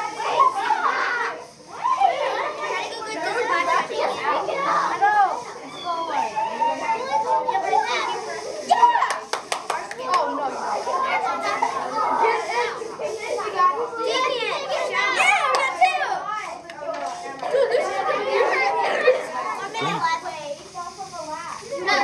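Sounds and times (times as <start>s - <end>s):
children talking and calling out: 0.0s - 22.0s.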